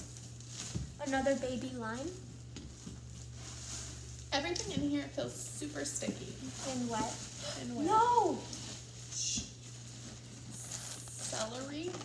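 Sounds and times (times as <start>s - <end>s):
packaging rustling: 0.0s - 5.0s, 5.6s - 12.0s
low steady hum: 0.0s - 12.0s.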